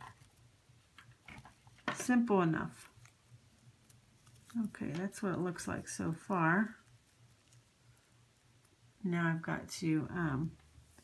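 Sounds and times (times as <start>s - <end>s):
soft clicks and rustles: 0.0s - 8.9s, 10.2s - 11.0s.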